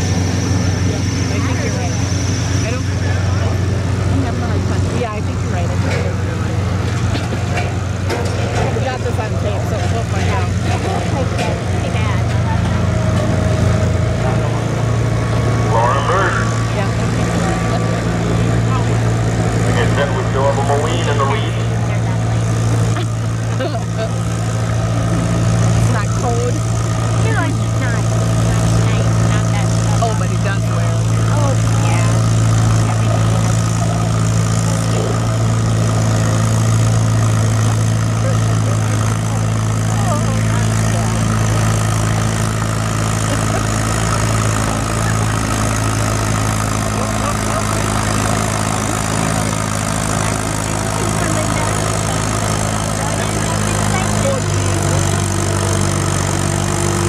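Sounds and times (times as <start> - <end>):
indistinct voices: 0.0 - 57.0
tractor engines idling: 0.0 - 57.0.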